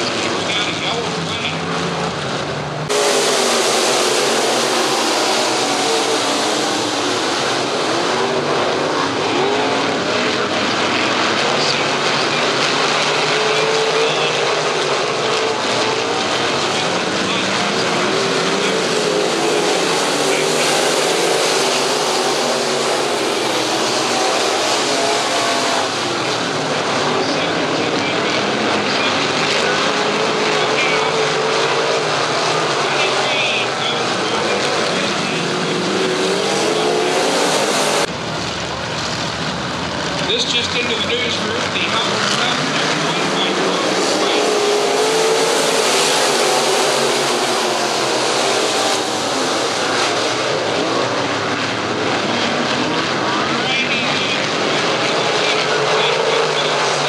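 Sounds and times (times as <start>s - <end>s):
race car engines droning: 0.0s - 57.0s.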